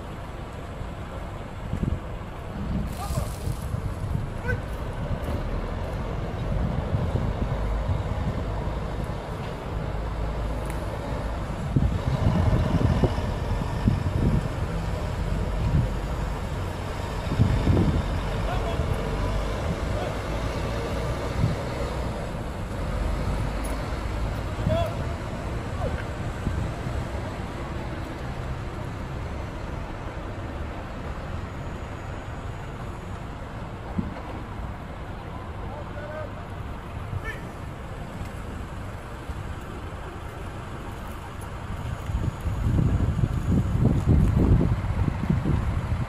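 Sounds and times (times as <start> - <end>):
traffic rumble: 0.0 - 46.0
wind on microphone: 6.2 - 9.2, 11.4 - 18.4, 41.8 - 46.0.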